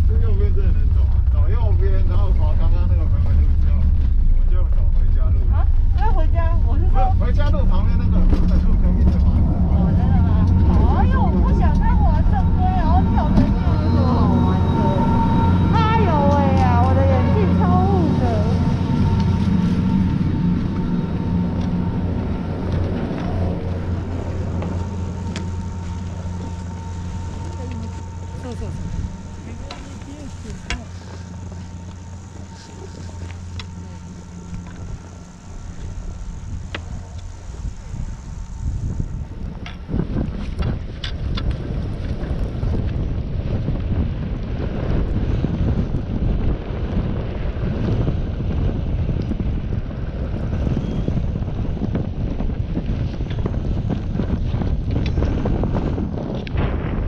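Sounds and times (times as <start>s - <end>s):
low hum: 0.0s - 57.0s
wind rushing over microphone: 0.0s - 57.0s.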